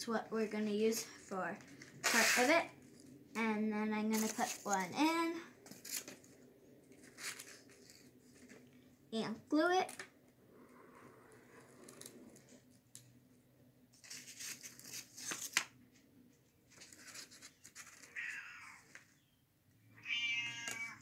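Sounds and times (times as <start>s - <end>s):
cardboard rustling and scraping: 1.6s - 2.7s, 4.1s - 5.0s, 5.6s - 8.7s, 13.9s - 15.6s, 16.6s - 18.2s
cat meowing: 18.1s - 18.8s, 19.9s - 21.0s.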